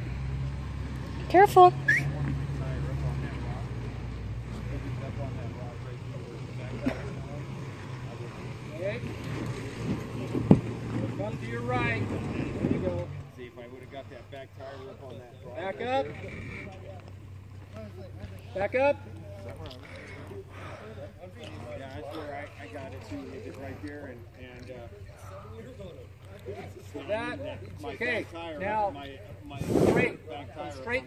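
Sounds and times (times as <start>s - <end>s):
engine running low: 0.0s - 31.0s.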